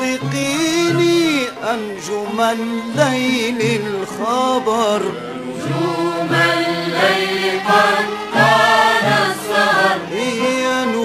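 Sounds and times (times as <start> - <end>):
ouds and violins playing: 5.1 - 10.8.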